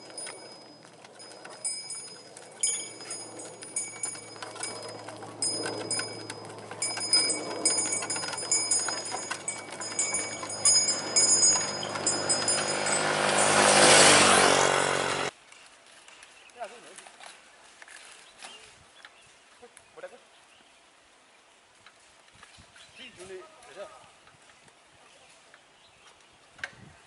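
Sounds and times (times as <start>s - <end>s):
ox bells jingling: 0.0s - 15.3s
wooden cart wheels clattering: 0.0s - 15.3s
vehicle engine hum: 0.0s - 15.4s.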